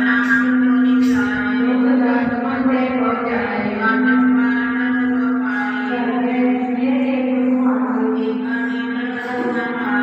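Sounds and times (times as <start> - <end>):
steady drone note: 0.0 - 10.0.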